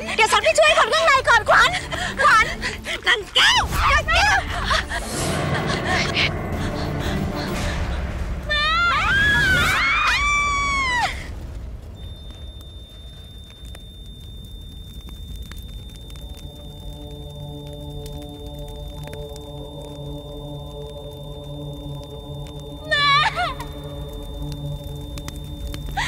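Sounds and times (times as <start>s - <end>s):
woman screaming: 8.5s - 11.3s, 22.8s - 24.1s
high ringing tone: 12.0s - 16.4s.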